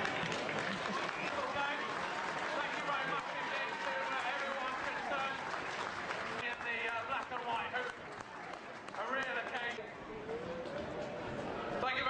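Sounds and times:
outdoor background noise: 0:00.0 - 0:12.0.

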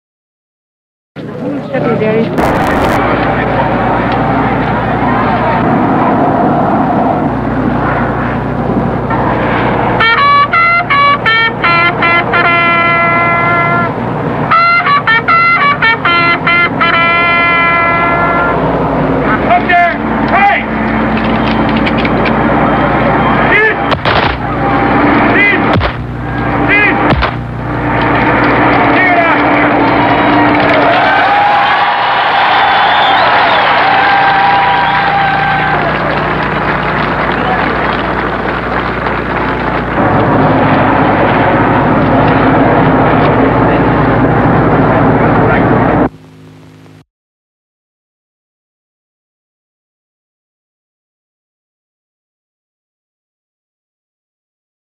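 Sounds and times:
crowd noise: 0:01.2 - 0:46.2.

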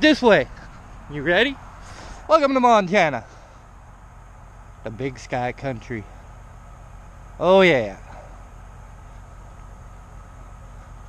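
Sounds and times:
diesel truck engine idling: 0:00.0 - 0:11.0.

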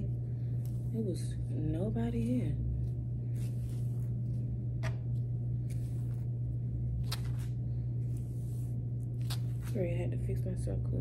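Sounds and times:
steady low hum: 0:00.0 - 0:11.0
hairbrush swishing through hair: 0:03.3 - 0:04.3.

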